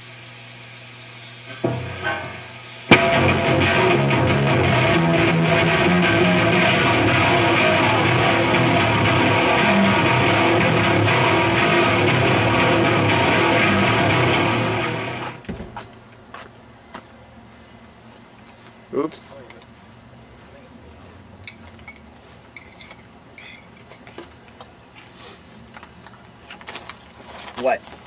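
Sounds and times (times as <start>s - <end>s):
distorted electric guitar riffs: 1.5s - 15.4s.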